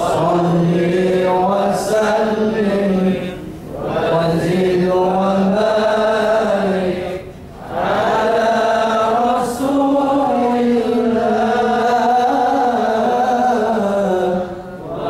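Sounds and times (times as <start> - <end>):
man reciting melodically: 0.0 - 7.4, 8.3 - 15.0.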